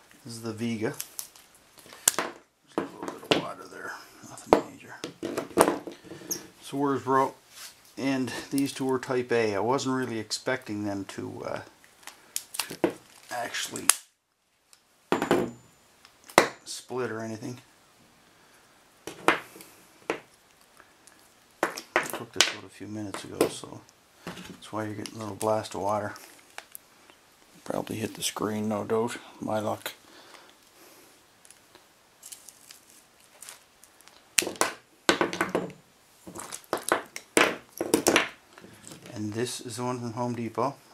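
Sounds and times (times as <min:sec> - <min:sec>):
hard object knocking on wooden bench: 0:15.1 - 0:15.6, 0:34.6 - 0:35.8.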